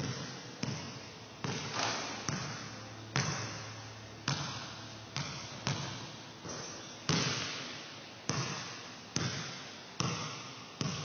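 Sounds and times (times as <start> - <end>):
basketball bouncing on gym floor: 0.0 - 11.0.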